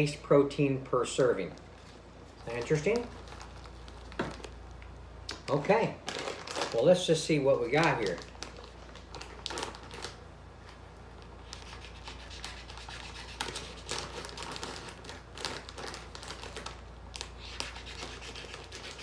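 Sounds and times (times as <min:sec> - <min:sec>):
plastic pouch crinkling: 0:01.5 - 0:04.8, 0:05.4 - 0:10.8, 0:13.3 - 0:18.9.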